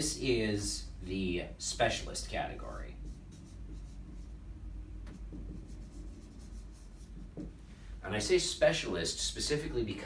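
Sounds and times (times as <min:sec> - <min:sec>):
low room hum: 0:00.0 - 0:10.0
marker writing on whiteboard: 0:02.8 - 0:07.6.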